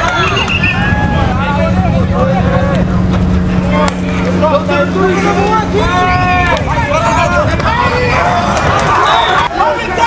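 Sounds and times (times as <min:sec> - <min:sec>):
players shouting and calling: 0:00.0 - 0:10.0
steady low hum: 0:00.0 - 0:10.0.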